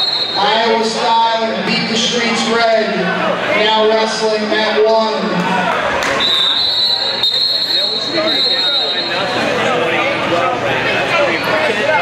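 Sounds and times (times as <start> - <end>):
referee's whistle long blast: 0.0 - 0.6, 6.2 - 9.2
crowd chatter and shouting: 0.0 - 12.0.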